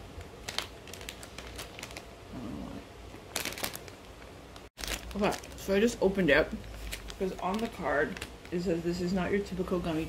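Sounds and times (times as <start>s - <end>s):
plastic bag crinkling: 0.1s - 2.2s, 3.2s - 9.4s.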